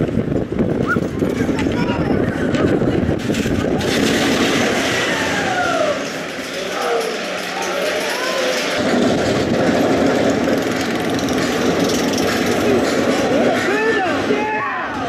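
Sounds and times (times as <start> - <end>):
roller coaster rumbling on track: 0.0 - 15.0
riders' voices: 0.8 - 3.2.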